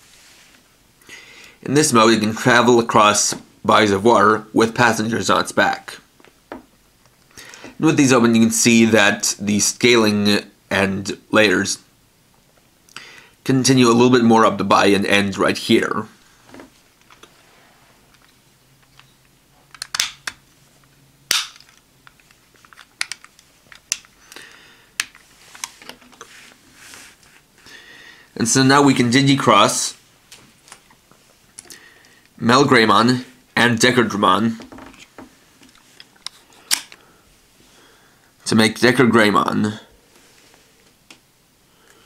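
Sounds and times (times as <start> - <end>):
plastic toy part snapping: 19.7 - 20.4, 21.3 - 24.1, 36.7 - 37.0
plastic toy parts clicking: 19.7 - 20.4, 21.3 - 24.2.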